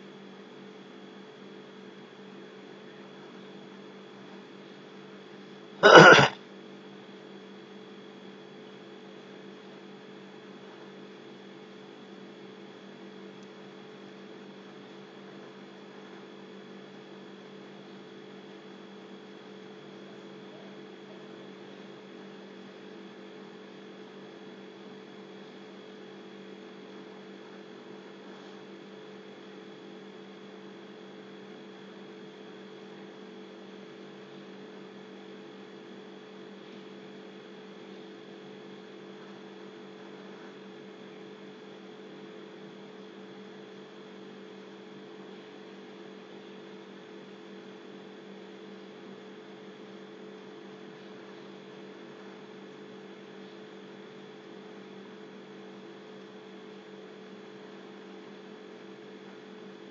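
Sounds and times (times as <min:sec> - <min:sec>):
electrical hum: 0:05.8 - 0:06.3.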